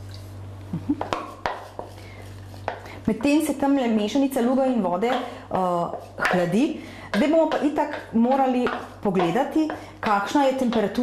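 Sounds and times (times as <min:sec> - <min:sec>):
wooden spoon knocking and scraping: 0:01.0 - 0:03.5, 0:04.9 - 0:11.0.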